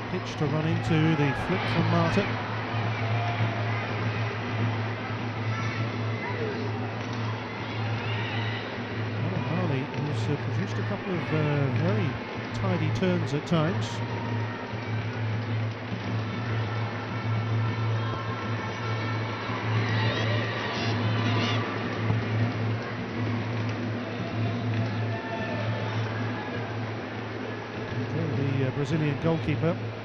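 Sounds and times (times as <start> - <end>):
stadium crowd murmur: 0.0 - 30.0.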